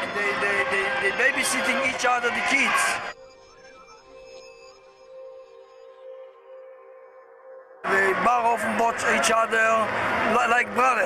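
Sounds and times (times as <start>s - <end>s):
soft ambient drone music: 3.1s - 11.0s.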